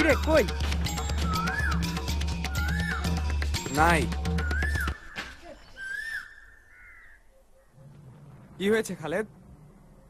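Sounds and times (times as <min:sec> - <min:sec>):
bird calling: 0:00.5 - 0:08.6.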